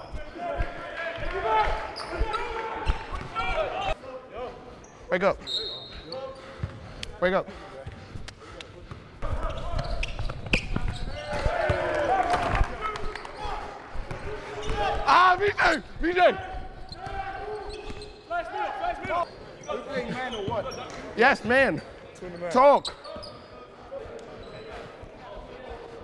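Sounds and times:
sneakers squeaking: 0:00.0 - 0:04.0, 0:04.7 - 0:06.9, 0:08.8 - 0:26.0.

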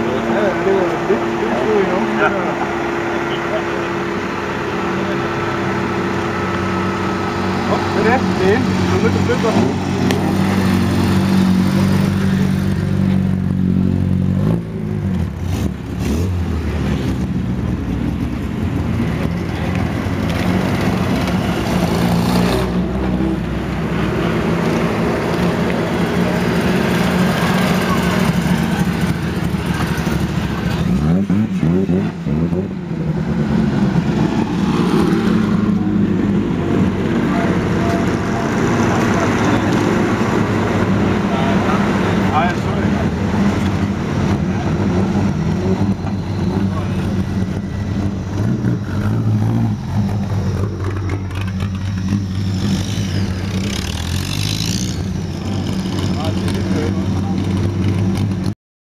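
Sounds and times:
racing car engines passing: 0:00.0 - 0:58.5
engine revving: 0:00.0 - 0:58.6.

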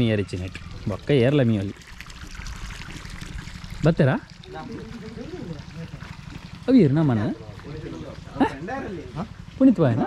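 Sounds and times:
men talking: 0:03.8 - 0:10.0.

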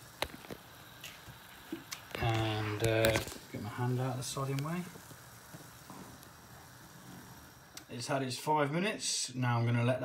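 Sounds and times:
water boiling in a pan: 0:00.0 - 0:10.0.

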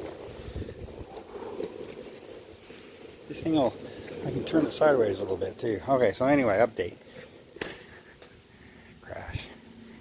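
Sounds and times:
wind buffeting microphone: 0:00.0 - 0:05.5
rumble rolling on concrete floor: 0:00.0 - 0:10.0.

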